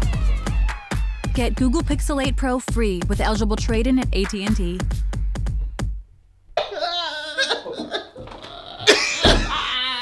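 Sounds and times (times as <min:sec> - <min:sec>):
laughter: 0:06.6 - 0:09.7
man sobbing and wailing: 0:06.6 - 0:10.0.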